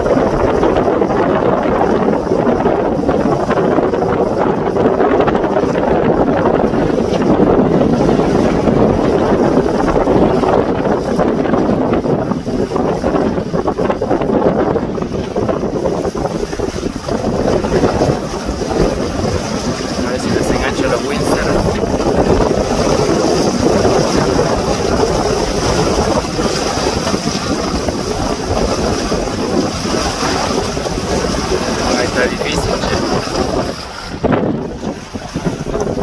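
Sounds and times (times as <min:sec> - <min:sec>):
water splashing along hull: 0:00.0 - 0:36.0
wind buffeting microphone: 0:00.0 - 0:36.0.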